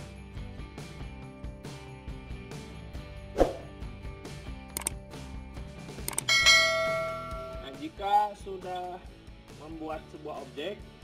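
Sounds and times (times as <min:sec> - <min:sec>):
quick clicks: 0:04.7 - 0:05.0, 0:06.0 - 0:06.3
bell chime ringing: 0:06.3 - 0:07.8.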